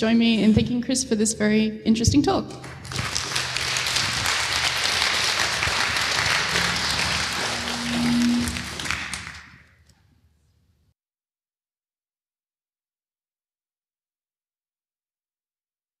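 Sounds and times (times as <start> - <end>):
audience applauding: 2.6 - 9.7.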